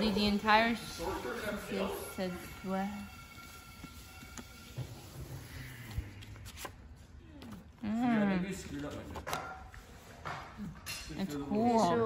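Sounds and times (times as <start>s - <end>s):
book pages rustling: 3.7s - 7.8s, 8.5s - 10.2s.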